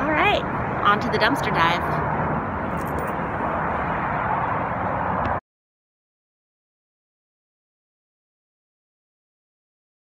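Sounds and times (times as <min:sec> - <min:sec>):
steady traffic rumble: 0:00.0 - 0:05.4.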